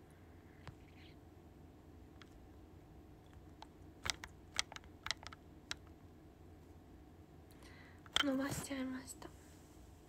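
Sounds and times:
typing clicks: 4.0s - 5.9s.

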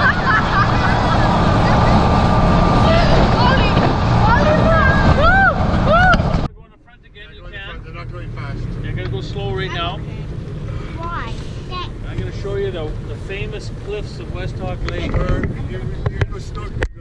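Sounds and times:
people laughing and whooping: 0.0s - 2.0s, 4.4s - 6.5s
motorboat running at speed: 0.0s - 6.5s
wind rushing over microphone: 0.0s - 6.5s.

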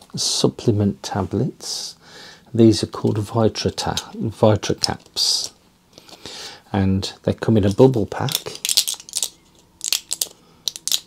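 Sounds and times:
blister pack crackling: 7.6s - 11.0s.

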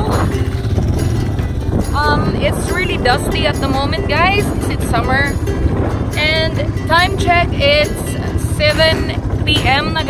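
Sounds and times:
background music: 0.0s - 10.0s
motorbike engine running: 0.0s - 10.0s.

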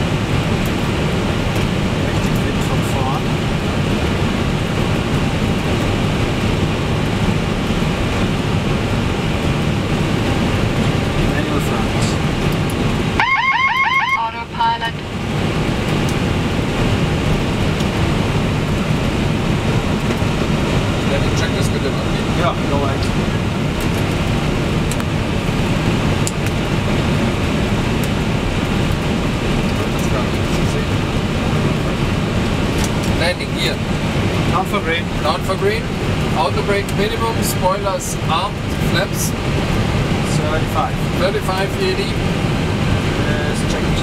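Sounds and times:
airflow rush: 0.0s - 13.3s, 14.2s - 44.0s
aircraft engine noise: 0.0s - 44.0s
flight deck noise: 0.0s - 44.0s
rapid warbling alarm: 13.2s - 15.0s.

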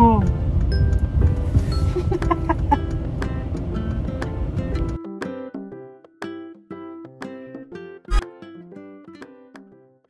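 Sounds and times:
road rumble inside car: 0.0s - 5.0s
background music: 0.0s - 10.0s.

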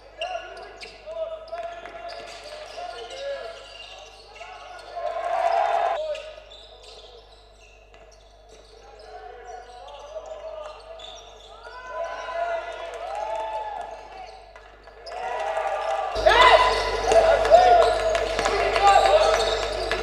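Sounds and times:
sneakers squeaking: 0.2s - 12.7s, 16.2s - 20.0s
players calling out: 4.1s - 6.0s, 15.0s - 20.0s.

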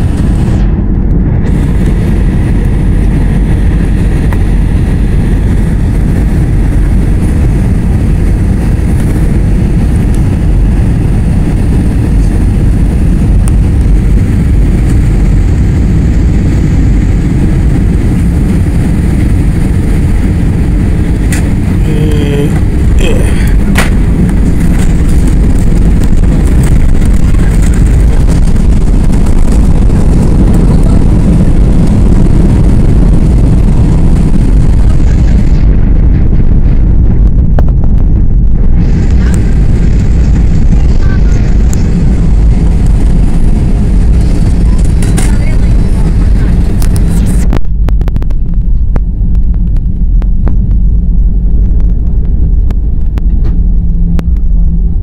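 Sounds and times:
airliner engine and air roar: 0.0s - 55.0s.

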